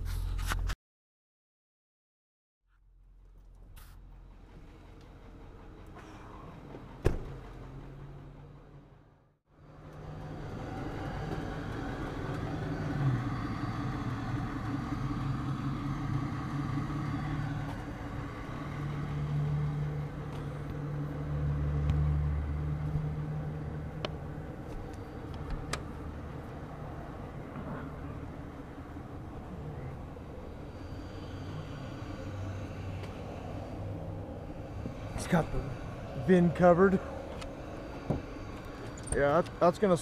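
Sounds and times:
vehicle engine running: 2.8s - 40.0s.

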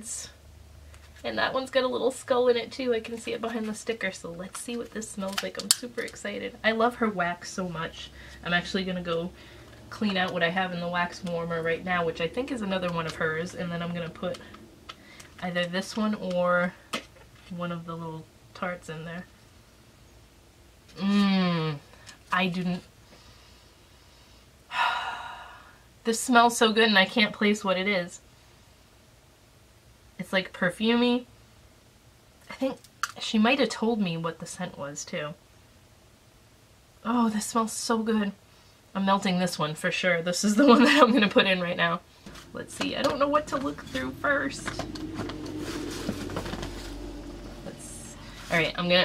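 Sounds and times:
woman's breathy sigh: 24.7s - 25.8s.

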